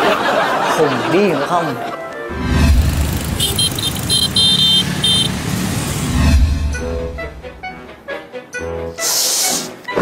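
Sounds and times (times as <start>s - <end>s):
vehicle horn beeps: 3.2s - 5.6s.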